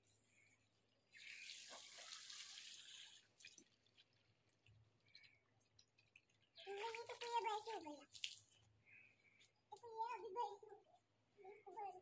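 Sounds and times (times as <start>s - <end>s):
hose water splashing into pool: 1.1s - 8.7s.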